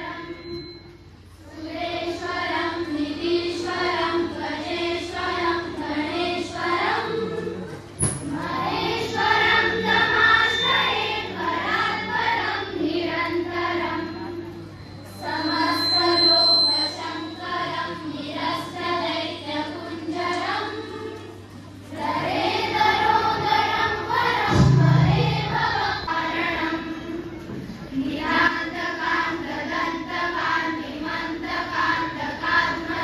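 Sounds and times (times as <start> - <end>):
children singing in chorus: 0.0 - 0.8, 1.4 - 33.0.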